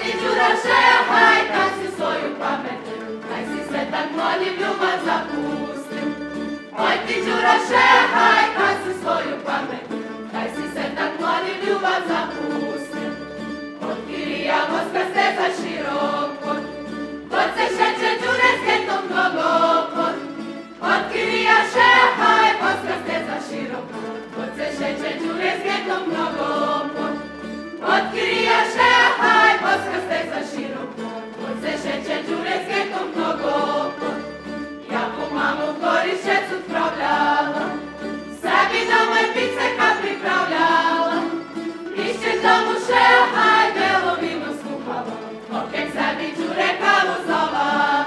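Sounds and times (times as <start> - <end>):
people singing folk song in unison: 0.0 - 48.0
tamburica band playing: 0.0 - 48.0.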